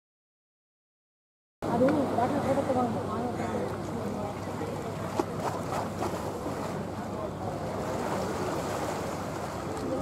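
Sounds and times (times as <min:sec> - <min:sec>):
faint distant voices: 0:01.6 - 0:10.0
outdoor background noise: 0:01.6 - 0:10.0.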